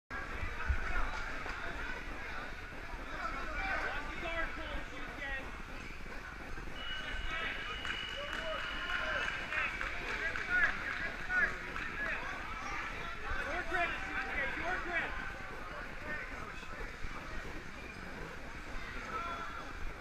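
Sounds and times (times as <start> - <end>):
crowd chattering: 0.1 - 20.0.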